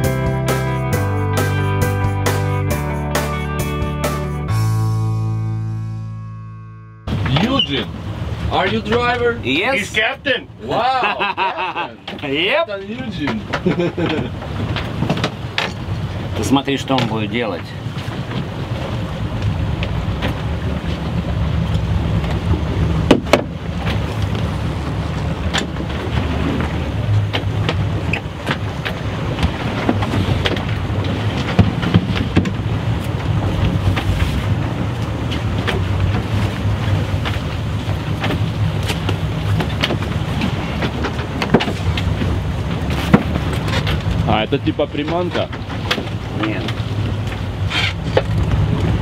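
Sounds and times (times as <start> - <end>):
boat engine running: 0.0 - 49.0
wind noise on microphone: 17.8 - 44.6, 45.2 - 49.0
sharp knocks: 23.0 - 24.0.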